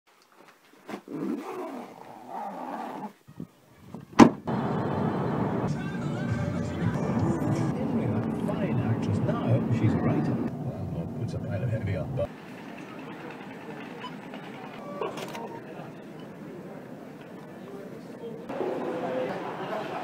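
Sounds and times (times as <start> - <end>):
bag rustling: 0.1 - 3.2
road noise inside moving car: 4.3 - 12.4
voices or music: 5.4 - 14.8.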